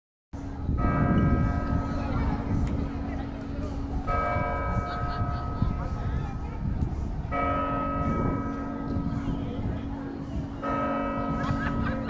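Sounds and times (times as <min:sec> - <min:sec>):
church bell ringing: 0:00.8 - 0:03.1, 0:03.8 - 0:06.4, 0:07.3 - 0:12.0.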